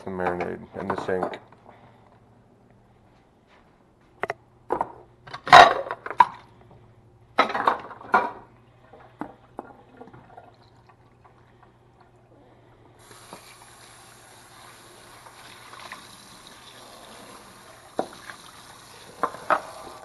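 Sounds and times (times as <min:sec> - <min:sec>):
tap water running: 0:08.9 - 0:12.2, 0:13.0 - 0:20.0
liquid splashing into sink: 0:13.0 - 0:20.0.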